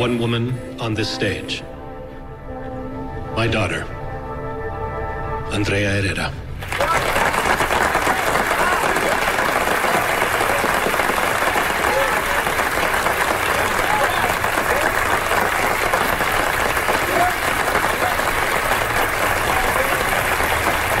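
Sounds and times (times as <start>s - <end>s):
audience applauding: 6.6s - 21.0s.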